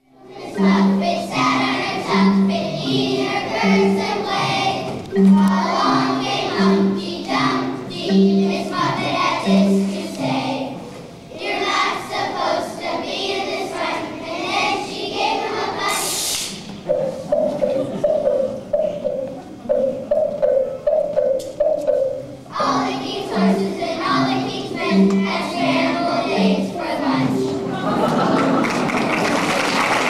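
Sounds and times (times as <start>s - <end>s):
children's choir singing: 0.0s - 30.0s
brief loud hiss: 15.9s - 16.8s.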